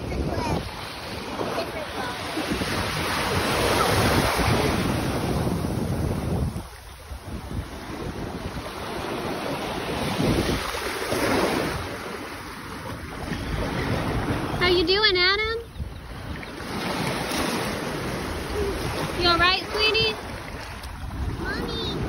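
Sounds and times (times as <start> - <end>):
rushing wind: 0.0 - 22.0
water noise: 0.0 - 22.0.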